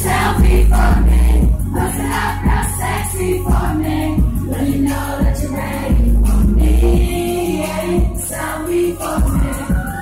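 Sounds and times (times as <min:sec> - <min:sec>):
loud pop song over sound system: 0:00.0 - 0:10.0.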